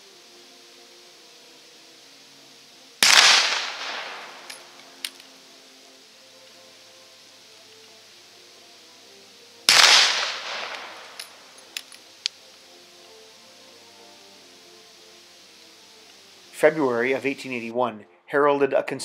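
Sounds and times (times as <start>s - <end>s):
rifle shots echoing: 3.0s - 4.8s, 9.7s - 11.4s.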